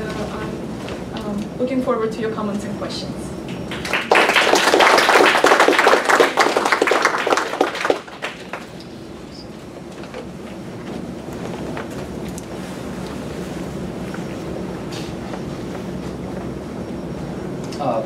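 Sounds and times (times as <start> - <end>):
low room noise: 0.0 - 18.0
small audience applauding: 3.5 - 8.8.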